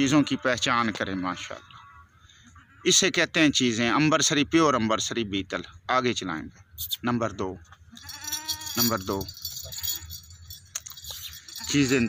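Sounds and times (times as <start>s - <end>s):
small bells jingling: 7.9s - 12.0s.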